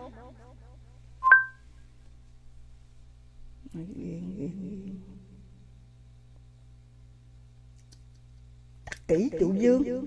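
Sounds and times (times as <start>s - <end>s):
low steady hum: 0.0s - 10.0s
electronic two-tone beep: 1.2s - 1.6s.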